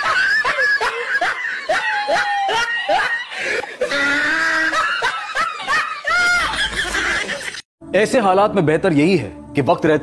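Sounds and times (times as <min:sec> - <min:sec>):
high-pitched snickering laugh: 0:04.1 - 0:07.6.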